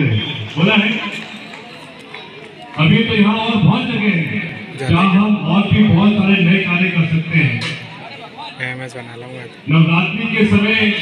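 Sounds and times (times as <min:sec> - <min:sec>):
faint crowd chatter: 0:00.0 - 0:11.0
man speaking: 0:02.8 - 0:07.7, 0:08.6 - 0:11.0.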